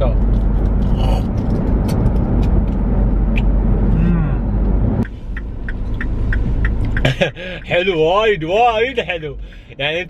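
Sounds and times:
car road noise rumble: 0.0s - 10.0s.

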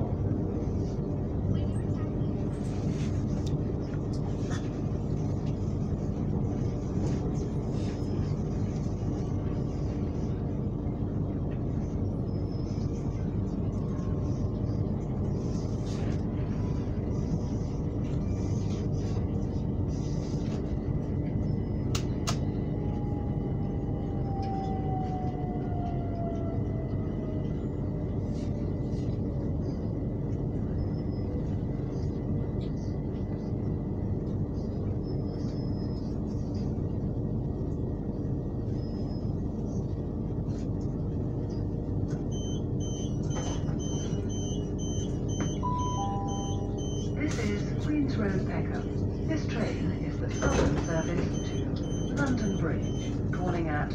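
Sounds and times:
electric train rumbling: 0.0s - 53.9s
rapid high beeps: 43.8s - 47.1s
two-note falling chime: 45.7s - 46.7s.

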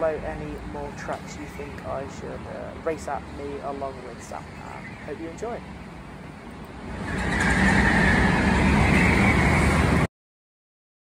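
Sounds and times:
go-kart motors whining: 6.5s - 10.1s.

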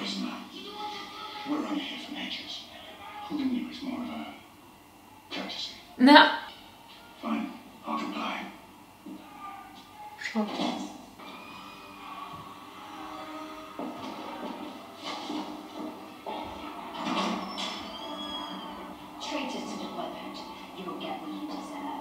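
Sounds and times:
soldiers shouting: 11.2s - 14.6s.

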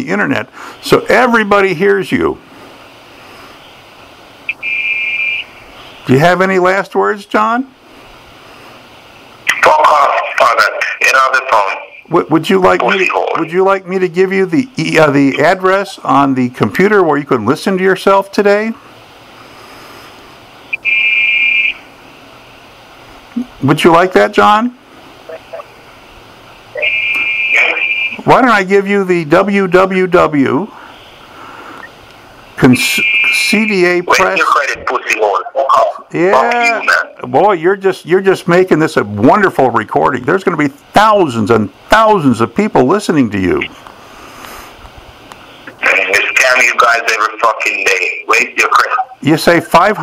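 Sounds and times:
faint line hiss: 0.0s - 50.0s.

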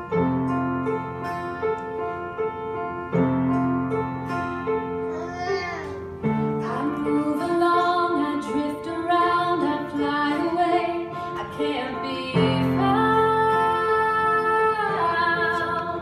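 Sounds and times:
upright piano: 0.0s - 16.0s
woman singing slow melody: 6.5s - 16.0s.

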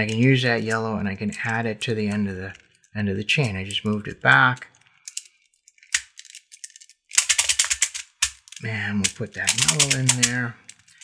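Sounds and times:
plastic beads clicking: 0.0s - 11.0s.

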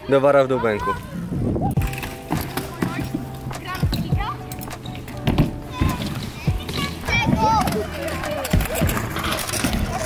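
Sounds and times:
bike rolling with light knocks: 1.8s - 10.0s
bike landing thud on concrete: 5.2s - 6.3s.

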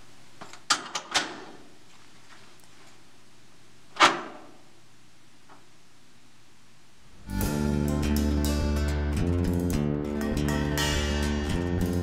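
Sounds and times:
low room hum: 0.0s - 7.5s.

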